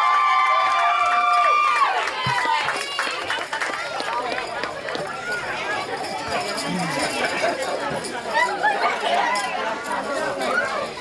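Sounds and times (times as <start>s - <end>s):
crowd chattering: 1.8s - 11.0s
children's voices: 2.5s - 11.0s.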